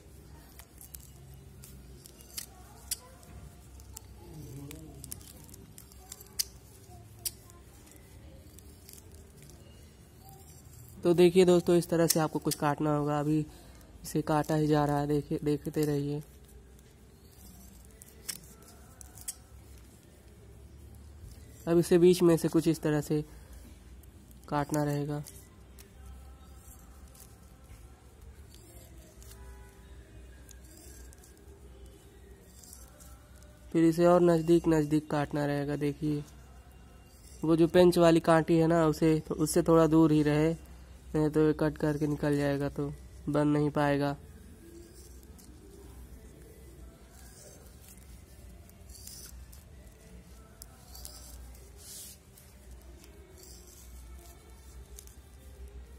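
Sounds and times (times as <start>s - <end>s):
scissors cutting plastic bag: 0.1s - 40.6s, 41.6s - 55.9s
scissors snipping plastic bag: 0.2s - 20.4s.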